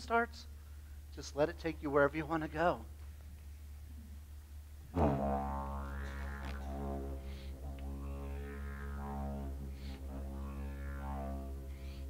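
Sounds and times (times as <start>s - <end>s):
didgeridoo drone: 4.8s - 12.0s.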